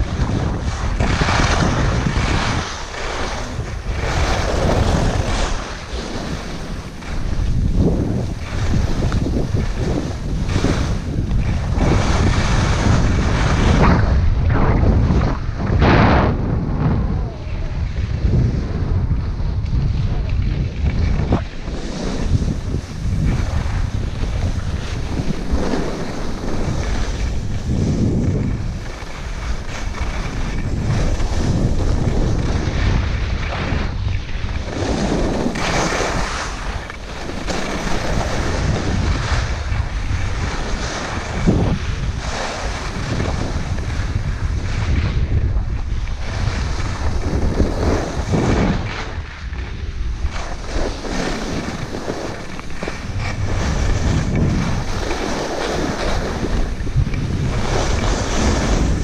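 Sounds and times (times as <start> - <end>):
skis scraping over snow: 0.0 - 59.0
wind buffeting microphone: 0.0 - 59.0.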